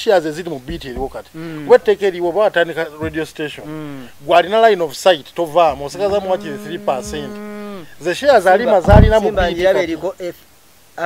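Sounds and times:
low thump: 0.7s - 1.3s, 5.7s - 7.9s, 8.8s - 9.7s
man singing: 5.9s - 7.4s.

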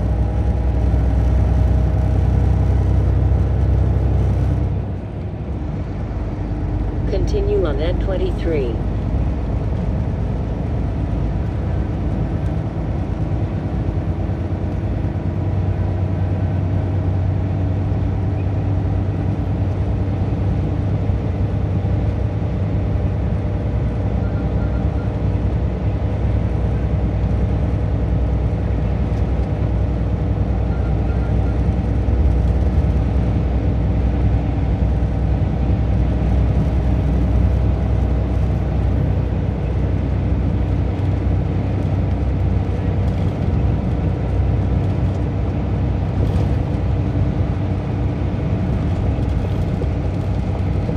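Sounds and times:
car engine and tyre hum: 0.0s - 50.9s.

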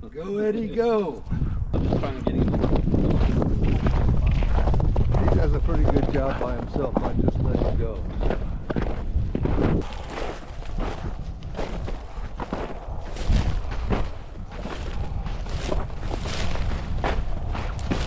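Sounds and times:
wind buffeting microphone: 0.8s - 18.0s
footsteps crunching through snow: 2.0s - 18.0s.

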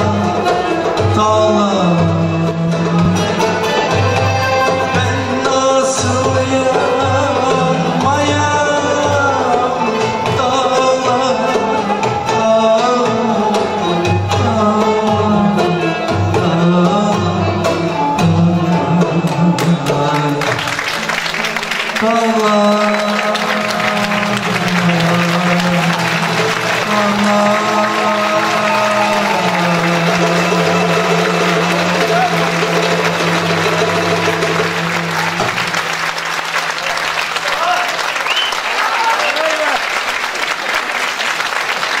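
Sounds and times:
singer and ensemble holding notes: 0.0s - 42.0s
audience applauding: 19.6s - 42.0s.

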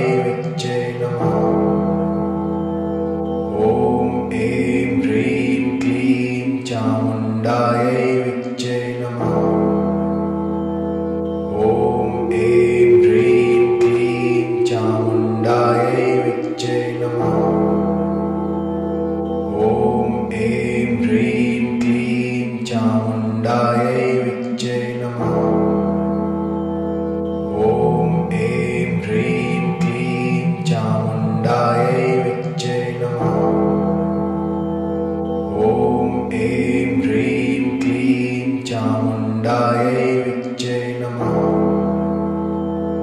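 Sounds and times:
person chanting: 0.0s - 10.7s, 11.3s - 26.7s, 27.3s - 43.0s
low musical drone: 0.0s - 43.0s.

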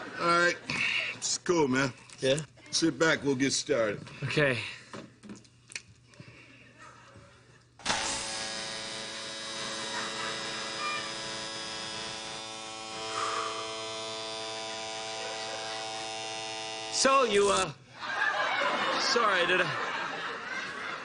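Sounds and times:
tattoo machine buzzing: 7.8s - 17.7s.

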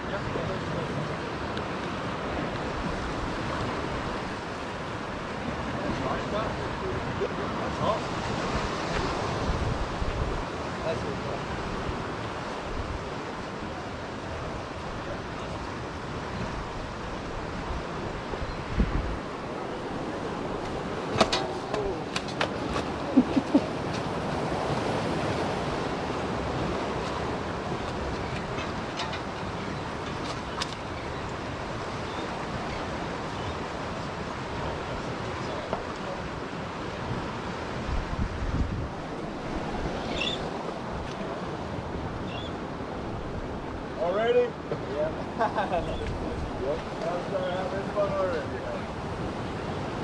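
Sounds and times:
ocean surf: 0.0s - 50.0s
wind blowing across microphone: 0.0s - 50.0s.

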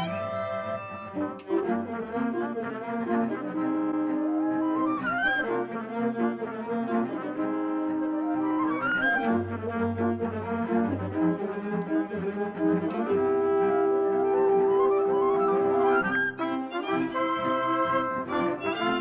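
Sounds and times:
brass ensemble music: 0.0s - 19.0s.

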